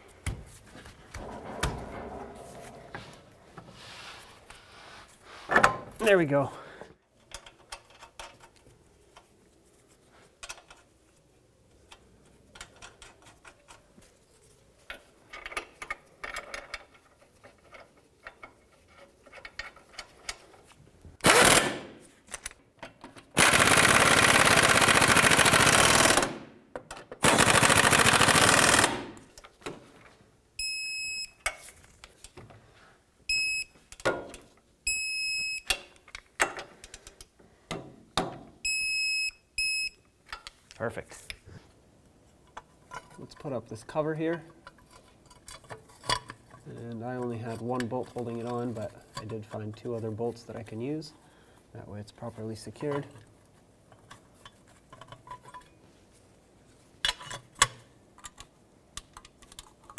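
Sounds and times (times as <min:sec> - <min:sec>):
impact wrench running: 0:21.2 - 0:21.9, 0:23.4 - 0:26.4, 0:27.3 - 0:29.1.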